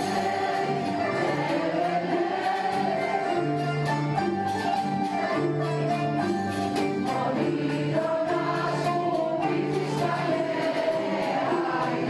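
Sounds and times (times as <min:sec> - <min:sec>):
mixed choir singing: 0:00.0 - 0:03.9, 0:06.9 - 0:12.0
guitar and zithers playing: 0:00.0 - 0:12.0.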